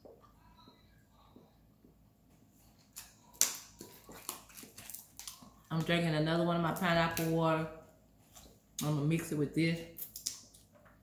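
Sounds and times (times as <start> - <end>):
plastic bottle crinkling: 2.9 - 6.0.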